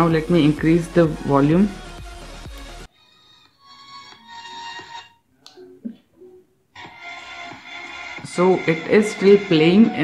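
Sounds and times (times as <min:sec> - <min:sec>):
song from small speaker: 0:00.0 - 0:05.7, 0:06.8 - 0:10.0.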